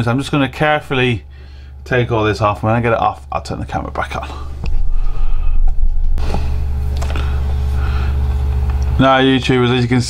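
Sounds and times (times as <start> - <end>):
faint hum: 0.0 - 10.0
loud low rumble: 4.4 - 8.7.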